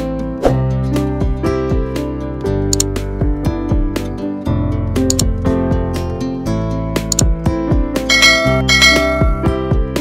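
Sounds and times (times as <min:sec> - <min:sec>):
gentle instrumental music: 0:00.0 - 0:10.0
bell-like chime notes: 0:08.1 - 0:09.6.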